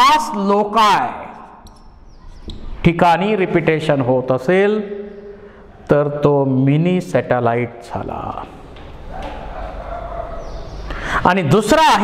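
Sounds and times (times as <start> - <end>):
marker squeaking on whiteboard: 1.3 - 2.8.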